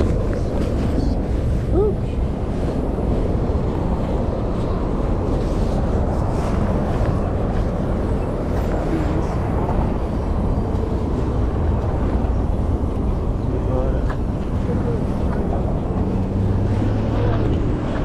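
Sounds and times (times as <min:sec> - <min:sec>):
road traffic: 0:00.0 - 0:18.0
wind rumbling on microphone: 0:00.0 - 0:18.0.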